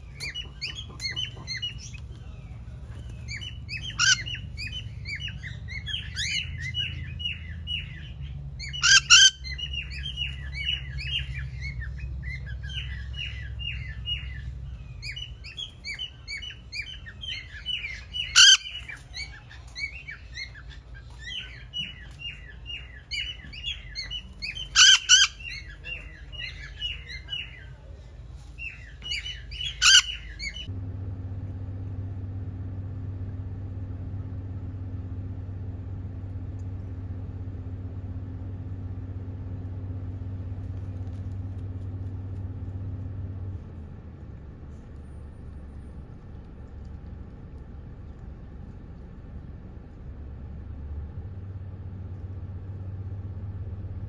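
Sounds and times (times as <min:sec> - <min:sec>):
parrots chattering: 0:00.0 - 0:27.8, 0:28.6 - 0:30.7
steady low hum: 0:00.0 - 0:54.0
loud harsh squawk: 0:08.6 - 0:09.8, 0:24.6 - 0:25.7, 0:29.6 - 0:30.6.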